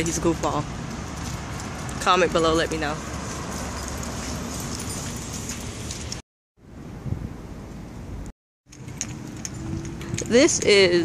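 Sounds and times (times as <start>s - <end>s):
faint footsteps on pavement: 0.0s - 6.2s
outdoor background noise: 0.0s - 11.0s.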